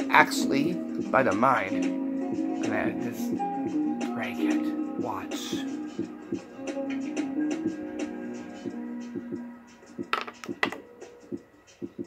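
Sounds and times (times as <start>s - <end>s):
quiet background music with beat: 0.0s - 12.0s
marker halves landing on table: 10.1s - 10.8s.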